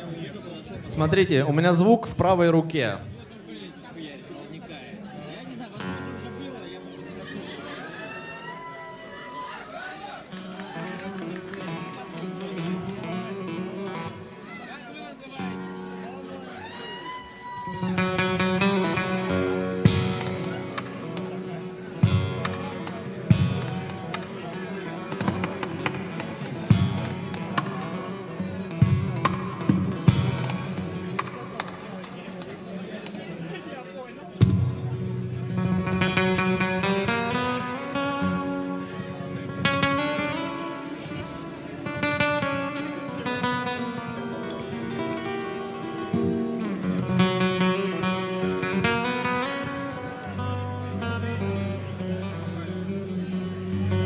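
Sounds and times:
fingerstyle acoustic guitar: 5.8 - 7.2, 10.4 - 14.5, 17.8 - 33.4, 34.4 - 54.0.

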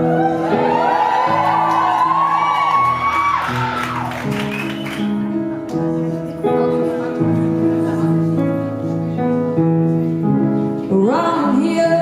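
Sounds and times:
audience whooping and cheering: 0.0 - 5.2
solo piano chords: 0.0 - 12.0.

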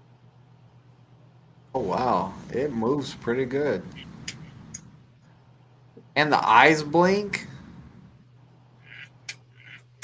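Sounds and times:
toy parrot squawks: 8.8 - 9.9.

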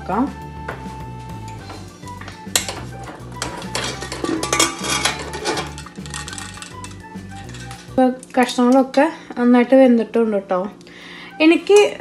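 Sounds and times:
background music: 0.0 - 12.0
metal lid clanking: 2.5 - 7.9
metal scraping clinks: 3.4 - 8.0.

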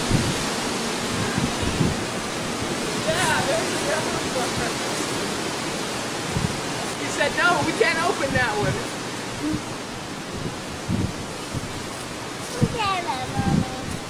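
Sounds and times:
microphone rushing noise: 0.0 - 14.0
child babbling: 12.6 - 14.0.

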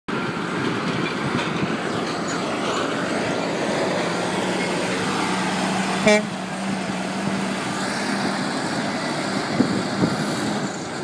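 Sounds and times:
truck diesel engine running: 0.1 - 11.0.

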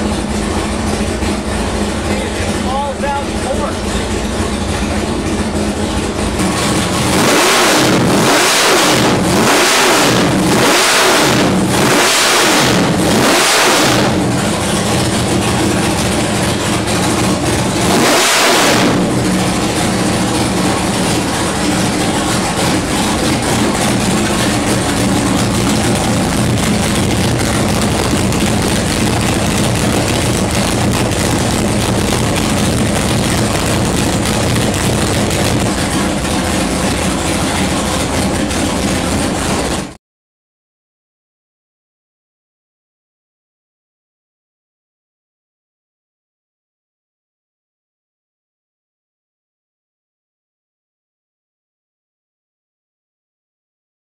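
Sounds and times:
car engine idling: 0.0 - 40.0
engine revving in throttle blips: 0.0 - 40.0.

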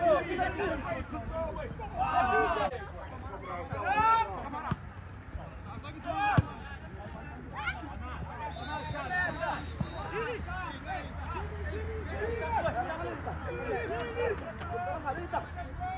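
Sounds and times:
people shouting outdoors: 0.0 - 4.8, 5.8 - 6.7, 7.3 - 15.9.

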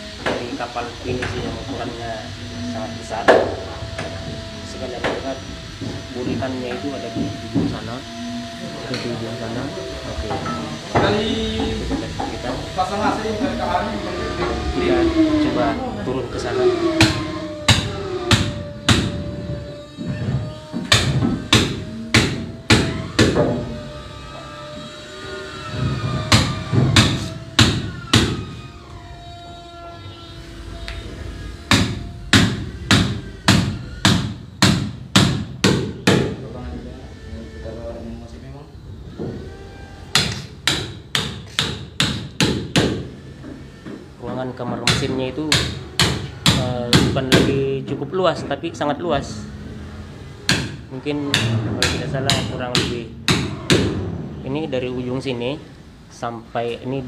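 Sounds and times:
hammer striking wooden timbers: 17.0 - 23.8, 25.8 - 28.6, 31.6 - 36.4, 40.1 - 43.2, 44.7 - 47.6, 50.5 - 54.1.

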